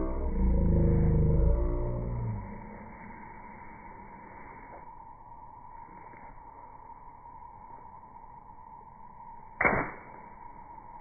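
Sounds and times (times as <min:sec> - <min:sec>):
water balloon bursting splash: 0:09.6 - 0:10.2.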